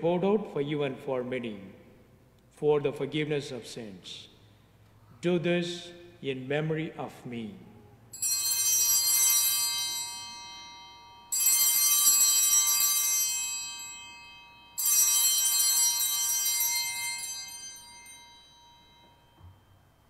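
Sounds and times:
altar bells ringing: 0:08.1 - 0:20.0.

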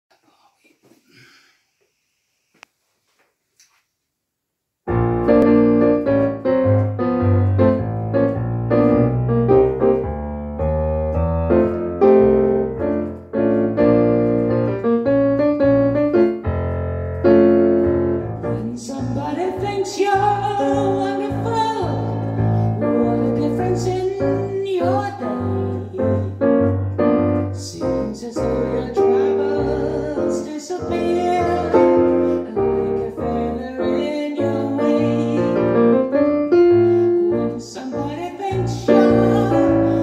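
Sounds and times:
bass line: 0:04.9 - 0:40.0
keyboard piano chords: 0:04.9 - 0:40.0.

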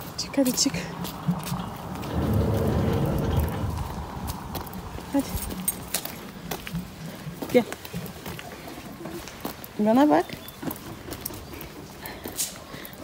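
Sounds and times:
footsteps on paving stones: 0:00.0 - 0:13.0
rushing noise: 0:01.8 - 0:05.0.

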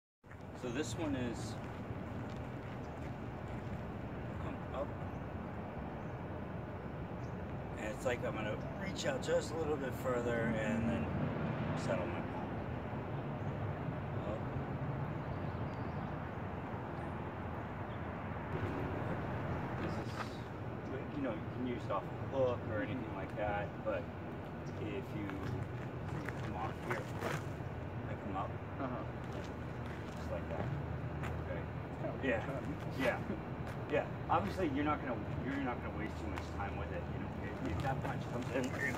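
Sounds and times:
urban background hum: 0:00.2 - 0:38.9
low outdoor rumble: 0:00.3 - 0:38.9
man speaking: 0:00.6 - 0:01.6, 0:04.3 - 0:05.0, 0:07.8 - 0:12.5, 0:14.2 - 0:14.6, 0:19.8 - 0:24.1, 0:24.7 - 0:27.5, 0:28.1 - 0:30.8, 0:31.4 - 0:38.9.

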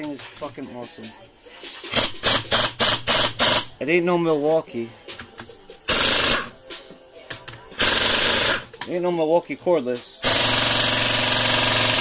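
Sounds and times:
pneumatic impact wrench bursts: 0:01.9 - 0:03.7, 0:05.9 - 0:06.5, 0:07.8 - 0:08.7, 0:10.2 - 0:12.0.

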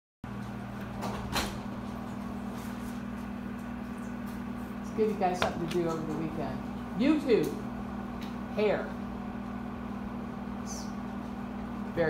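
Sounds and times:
projector fan humming: 0:00.3 - 0:12.0.

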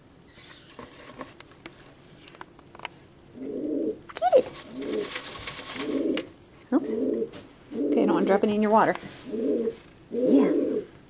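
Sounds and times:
pigeon cooing: 0:03.3 - 0:08.3, 0:09.2 - 0:10.9
paper tickets rustling in a tub: 0:04.2 - 0:06.3.

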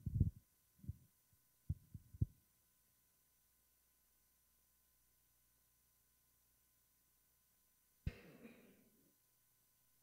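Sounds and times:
muffled thumps on microphone: 0:00.0 - 0:01.0.

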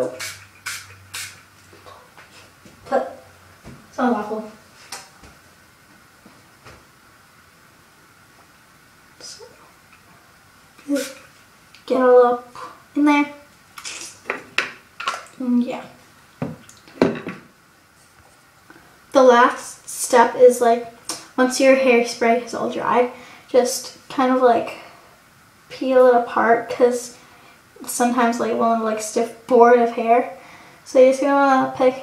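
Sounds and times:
hairspray hissing bursts: 0:00.0 - 0:01.4, 0:10.9 - 0:11.3
objects knocking on hard counter: 0:16.4 - 0:17.5.

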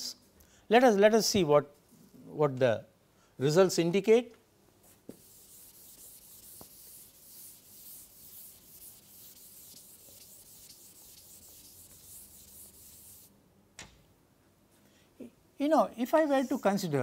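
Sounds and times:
eraser rubbing on chalkboard: 0:05.1 - 0:13.3.

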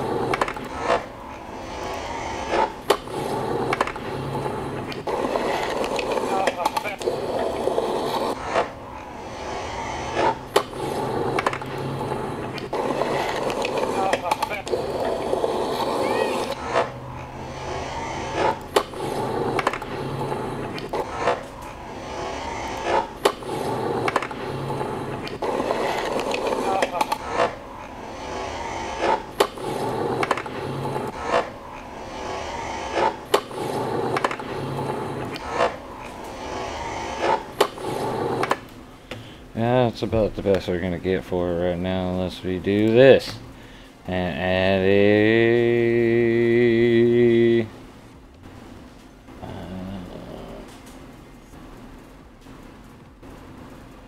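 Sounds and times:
skateboard pop and landing clack: 0:00.3 - 0:01.1, 0:03.7 - 0:04.0, 0:10.5 - 0:11.7, 0:18.4 - 0:19.9, 0:24.0 - 0:24.4, 0:30.2 - 0:30.5, 0:34.1 - 0:34.5
voices: 0:06.1 - 0:08.3, 0:12.6 - 0:16.9, 0:26.1 - 0:27.5, 0:44.1 - 0:47.8, 0:49.4 - 0:51.6.

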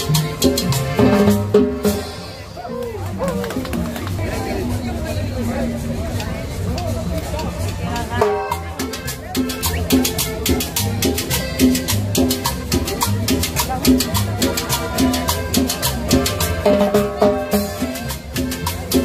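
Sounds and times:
drum kit: 0:00.0 - 0:02.4
accordion: 0:00.0 - 0:04.8, 0:07.6 - 0:19.0
conga drums: 0:00.0 - 0:19.0
double bass: 0:00.0 - 0:19.0.

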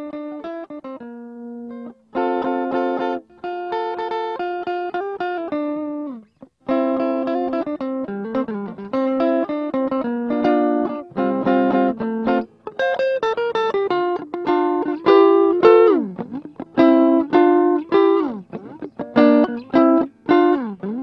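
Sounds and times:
guitar strummed and picked: 0:00.0 - 0:21.0.

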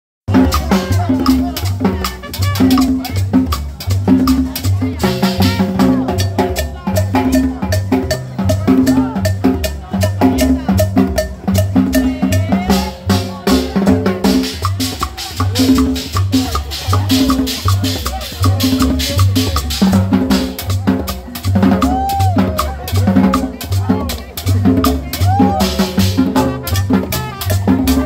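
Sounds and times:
conga and timbale drums: 0:00.3 - 0:28.0
latin dance band playing: 0:00.3 - 0:28.0
person singing: 0:11.8 - 0:14.4
shakers: 0:14.4 - 0:26.6.

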